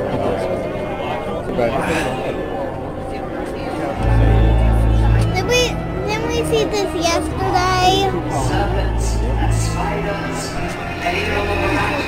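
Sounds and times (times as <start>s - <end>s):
crowd chatter: 0.0s - 12.0s
background music: 2.0s - 12.0s
child singing: 5.3s - 8.2s.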